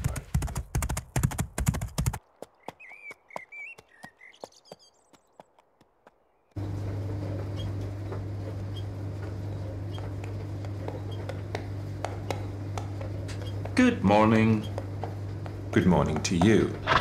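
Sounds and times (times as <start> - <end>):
faint hoof clops: 0.0 - 6.6, 10.0 - 17.0
galloping horse hoofbeats: 0.0 - 6.6, 9.2 - 17.0
birds chirping: 2.2 - 17.0
washing machines humming: 6.6 - 17.0.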